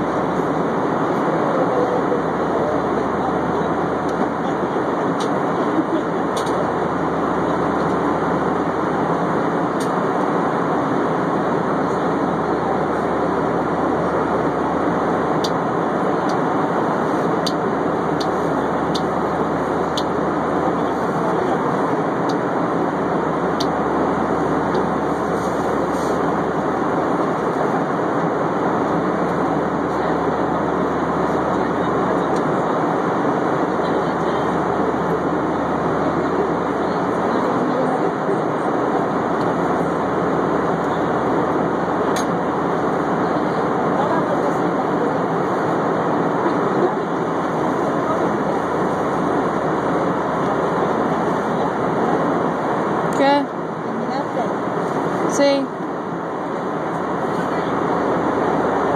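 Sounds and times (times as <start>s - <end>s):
airliner cabin engine rush: 0.0s - 58.9s.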